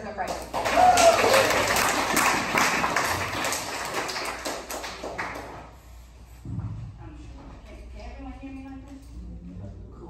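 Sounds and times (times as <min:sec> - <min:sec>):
audience applause: 0:00.5 - 0:05.7.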